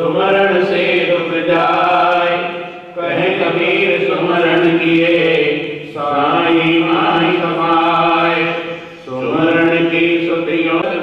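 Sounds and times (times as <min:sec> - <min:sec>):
man chanting a prayer: 0:00.0 - 0:11.0.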